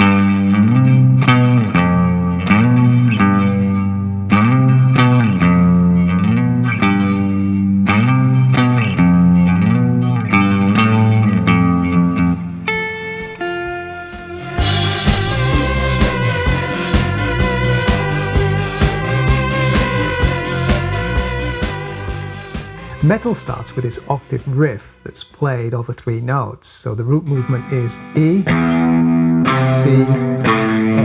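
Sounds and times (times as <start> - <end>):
electric guitar sliding melody: 0.0 - 25.2, 27.3 - 31.0.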